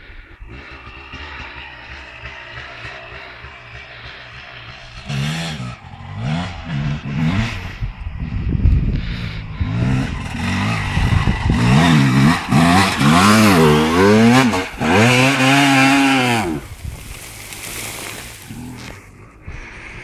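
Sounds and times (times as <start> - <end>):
motocross engine revving: 0.4 - 19.7.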